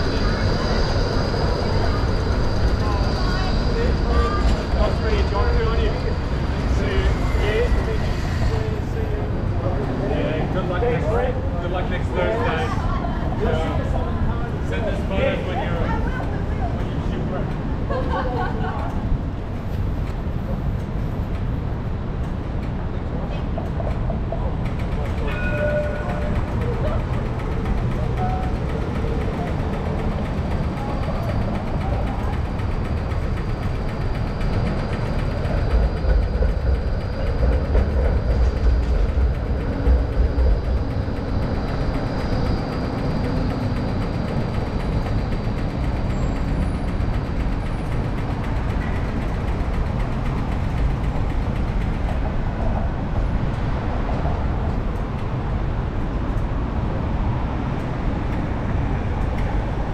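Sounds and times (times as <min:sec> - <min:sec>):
electric tram rumbling past: 0:00.0 - 0:59.9.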